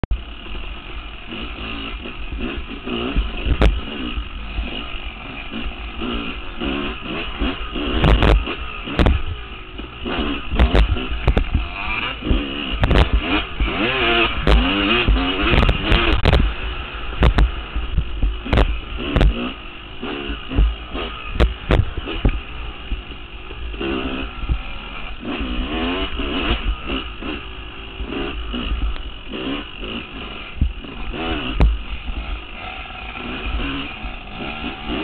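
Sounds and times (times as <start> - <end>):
dirt bike engine running: 0.0 - 35.0
sharp knocks and clatters: 20.5 - 22.4.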